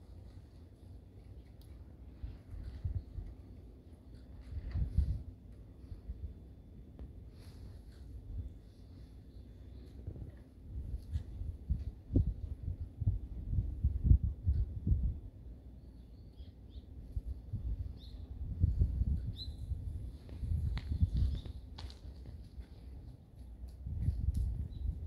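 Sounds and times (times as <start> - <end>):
wind buffeting microphone: 2.1 - 3.6, 4.3 - 6.4, 10.0 - 15.5, 16.9 - 25.0.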